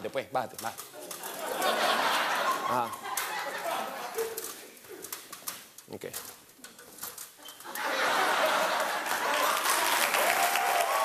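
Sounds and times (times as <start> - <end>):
small clicks and rustles: 4.1 - 7.8
studio audience applause: 7.9 - 11.0.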